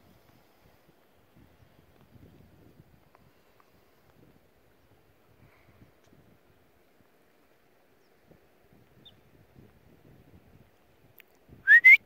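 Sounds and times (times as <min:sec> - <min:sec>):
person whistling rising notes: 0:11.7 - 0:12.0.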